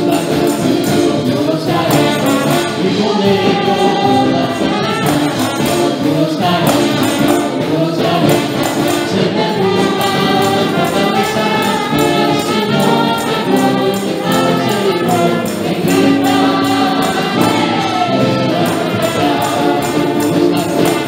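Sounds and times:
band with steady beat: 0.0 - 21.0
women singing together: 0.0 - 21.0.

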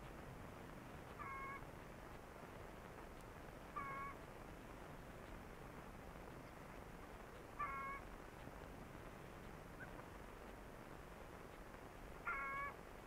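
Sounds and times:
animal calls: 1.2 - 1.6, 7.6 - 8.0, 12.2 - 12.8.

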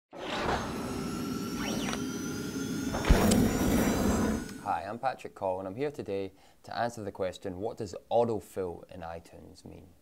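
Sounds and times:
whooshing sound effects: 0.2 - 4.8.

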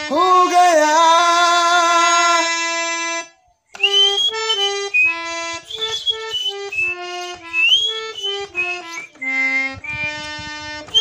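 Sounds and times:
harmonium melody: 0.0 - 11.0.

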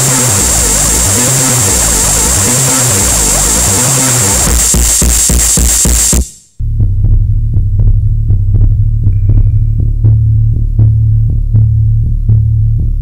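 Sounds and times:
ticking pulse: 0.0 - 12.9
low synth bass drone: 0.0 - 13.0.

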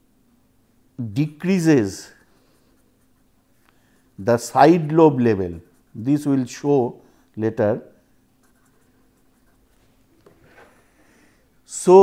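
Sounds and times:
pen scratching on paper: 2.0 - 3.4, 4.0 - 6.3, 8.4 - 9.8.

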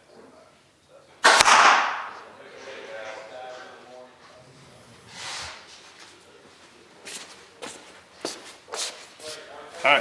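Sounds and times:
footsteps: 2.1 - 9.8.

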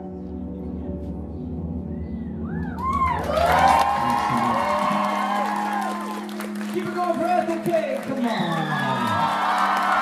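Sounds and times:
audience whooping: 2.4 - 6.9, 8.0 - 10.0
audience cheering and applauding: 2.5 - 10.0.

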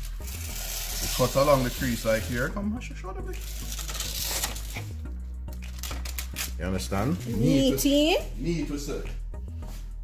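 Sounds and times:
background music with bass: 0.0 - 10.0
paper rustling and scraping: 3.4 - 4.9.

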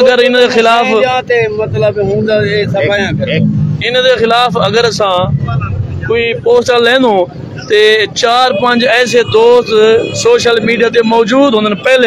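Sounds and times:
low street rumble: 0.0 - 12.0
man speaking: 0.0 - 12.0.

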